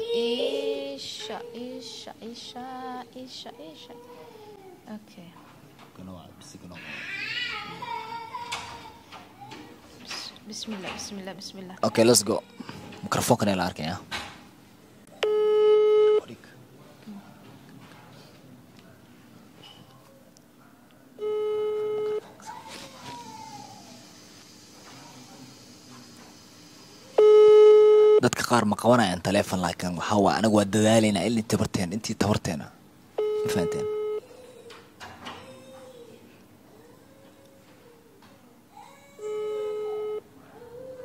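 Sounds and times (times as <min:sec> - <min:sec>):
smartphone electronic beep: 0:21.2 - 0:22.2, 0:27.2 - 0:28.2, 0:33.2 - 0:34.2, 0:39.3 - 0:40.2
electronic beep: 0:33.2 - 0:34.2.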